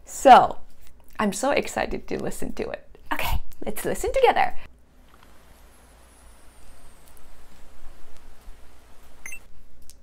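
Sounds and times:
soft even hiss: 4.8 - 10.0.

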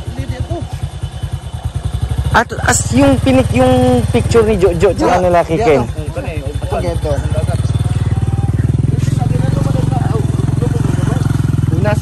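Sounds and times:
motorcycle engine running: 0.0 - 12.0
people talking: 2.3 - 12.0.

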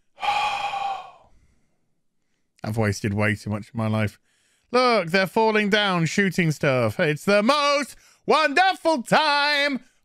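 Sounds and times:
man exhaling loudly: 0.0 - 1.4.

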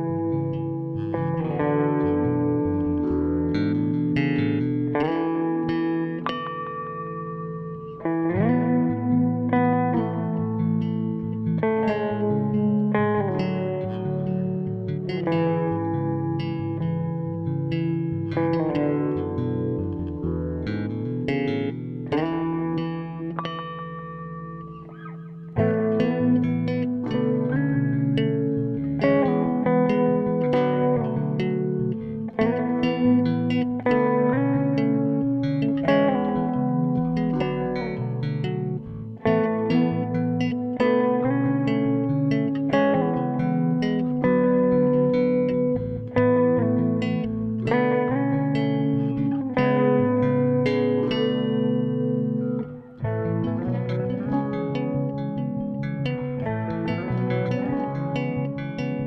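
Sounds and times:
electric bass plucked: 0.0 - 59.0.

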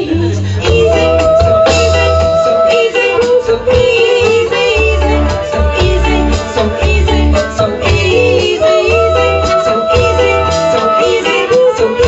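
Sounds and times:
bass: 0.0 - 12.0
rocksteady band playing live: 0.0 - 12.0.

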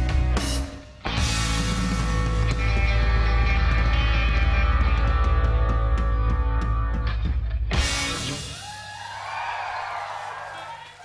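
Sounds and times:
long drawn-out shout: 8.4 - 11.0.

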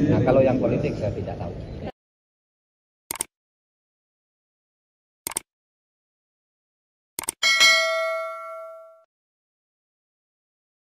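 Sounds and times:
quick double click: 3.1 - 3.3, 5.3 - 5.5, 7.2 - 7.4
bright bell ding: 7.4 - 9.1.

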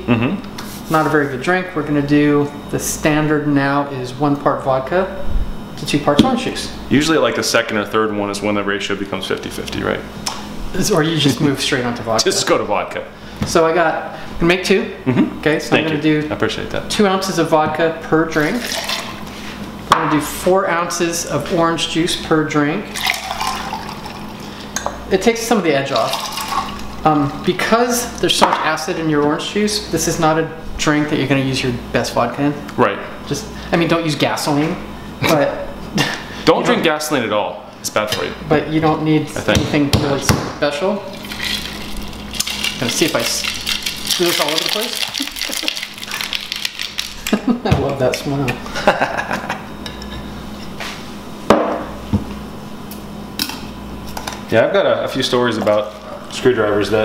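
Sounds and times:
juice pouring into metal shaker: 18.5 - 19.1, 23.0 - 24.5, 26.0 - 26.9, 41.1 - 47.3.

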